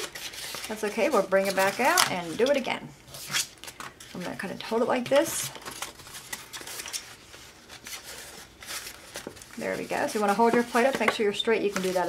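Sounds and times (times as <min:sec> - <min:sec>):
paper rustling and scraping: 0:00.0 - 0:04.4, 0:05.2 - 0:12.0.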